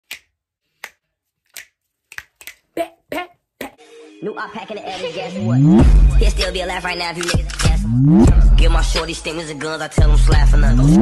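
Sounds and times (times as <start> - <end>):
sharp snaps and pops: 0.0 - 2.7
music: 3.8 - 11.0.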